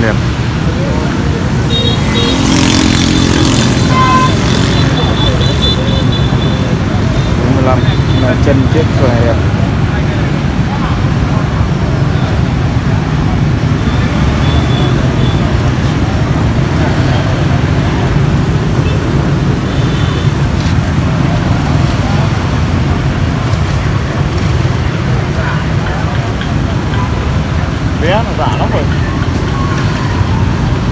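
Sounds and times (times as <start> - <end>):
street traffic rumble: 0.0 - 30.9.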